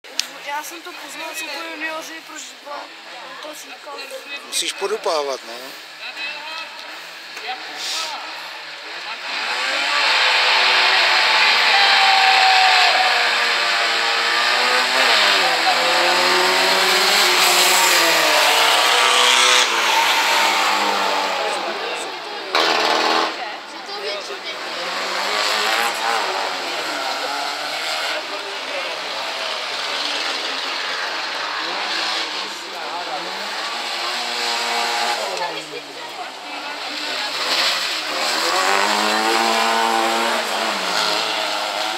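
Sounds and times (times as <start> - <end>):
race car engines revving: 0.0 - 41.9.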